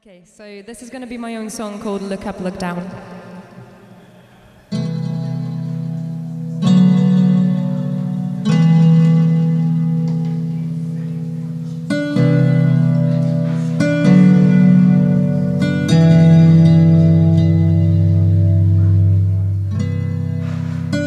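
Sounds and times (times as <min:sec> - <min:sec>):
plucked zither chords: 0:04.7 - 0:21.0.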